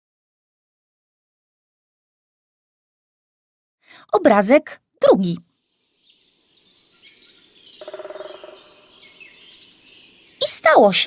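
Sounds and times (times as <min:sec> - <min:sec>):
songbirds chirping: 0:04.2 - 0:11.0.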